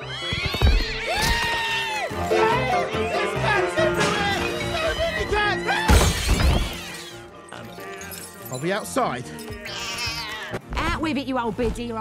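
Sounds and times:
background music: 0.0s - 12.0s
window glass shattering: 5.9s - 7.0s.

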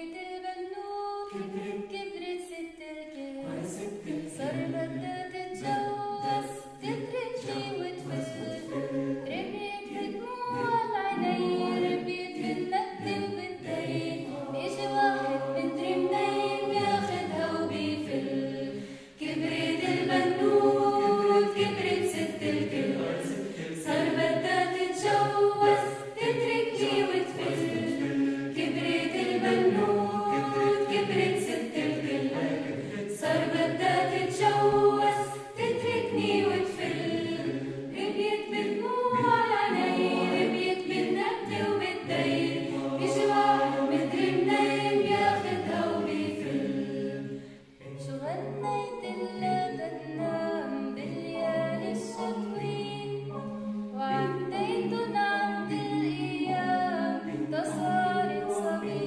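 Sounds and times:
mixed choir singing a cappella: 0.0s - 59.0s.

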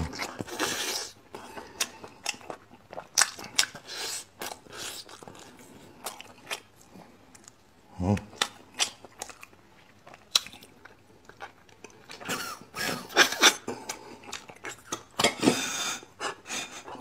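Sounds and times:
wet chewing and smacking: 0.0s - 15.4s.

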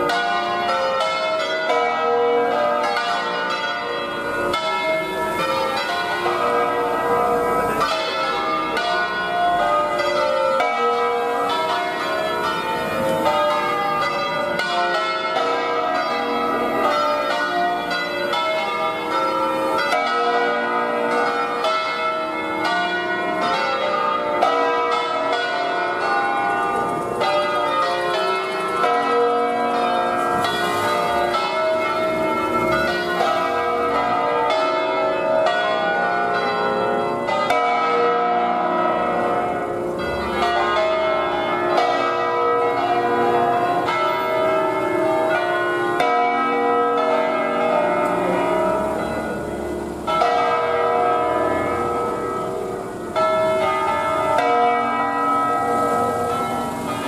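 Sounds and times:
church bells ringing: 0.0s - 57.0s.

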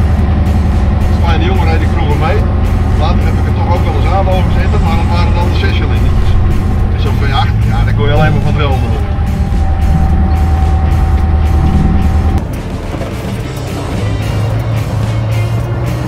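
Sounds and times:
diesel engine deep drone: 0.0s - 16.0s.

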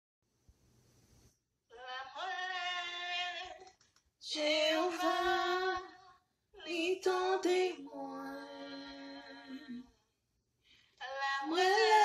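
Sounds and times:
faint hiss: 0.3s - 1.4s.

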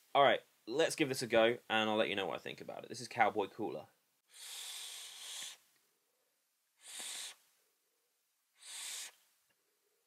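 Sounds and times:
breathy hisses of vape puffs: 4.3s - 5.6s, 6.8s - 7.4s, 8.6s - 9.2s.

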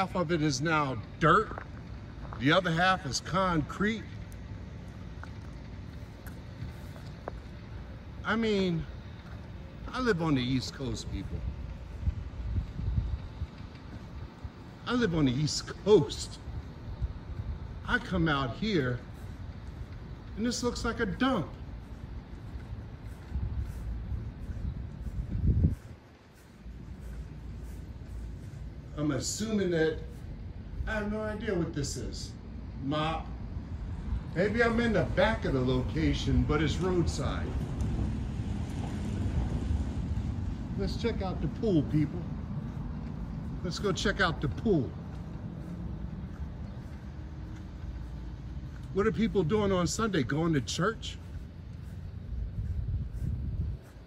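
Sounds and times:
wind buffeting microphone: 4.2s - 31.4s, 51.1s - 54.0s.

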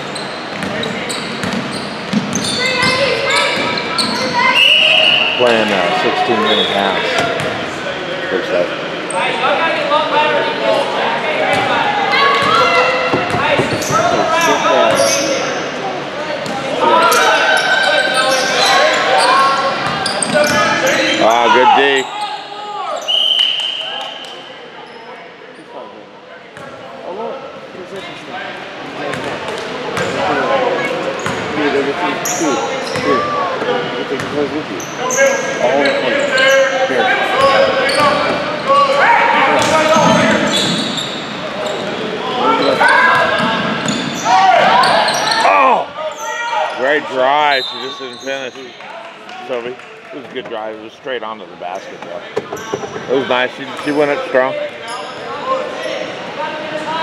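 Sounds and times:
players' voices echoing: 0.0s - 57.0s
short steady whistle: 23.1s - 23.9s.

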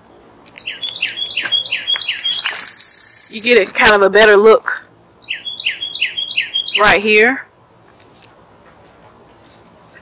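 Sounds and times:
songbird whistling: 0.6s - 3.5s, 5.2s - 7.0s.

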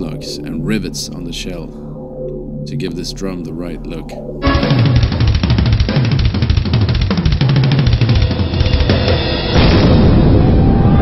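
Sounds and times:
rapid drum strokes: 4.4s - 9.8s
metal band playing: 4.4s - 9.9s.

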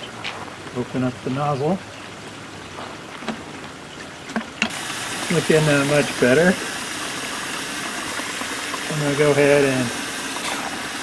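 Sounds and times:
water flushing into bucket: 4.1s - 11.0s
steady hiss: 4.6s - 11.0s.

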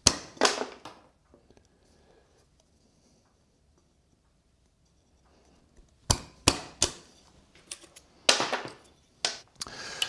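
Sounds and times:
chisel cracking wood: 0.0s - 0.8s, 6.1s - 7.0s.

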